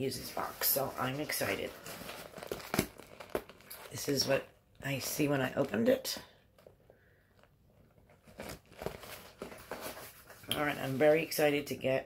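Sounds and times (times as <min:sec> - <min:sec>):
cardboard box crinkling: 0:00.2 - 0:04.3, 0:08.0 - 0:11.2.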